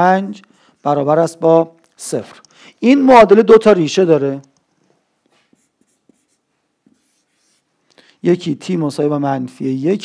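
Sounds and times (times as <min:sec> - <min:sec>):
marker writing on whiteboard: 0:05.3 - 0:07.7.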